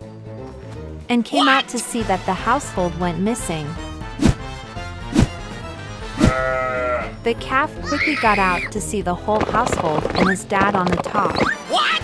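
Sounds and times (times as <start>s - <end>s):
background music: 0.0s - 12.0s
cartoon calf bleating: 6.2s - 7.2s, 7.8s - 8.7s.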